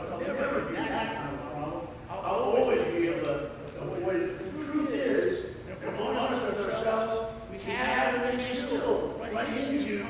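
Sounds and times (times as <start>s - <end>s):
man preaching: 0.0s - 10.0s.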